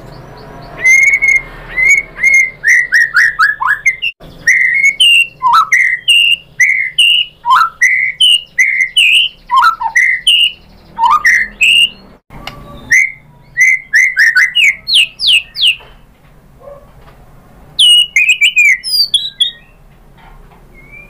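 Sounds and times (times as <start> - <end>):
bird singing whistled notes: 0.0 - 16.0, 17.8 - 19.8, 20.7 - 21.0.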